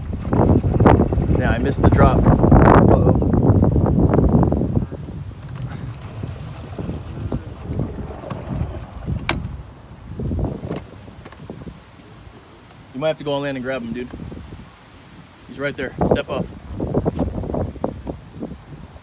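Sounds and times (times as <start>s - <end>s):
water churning from boat propeller: 0.0s - 19.0s
wind buffeting microphone: 0.0s - 19.0s.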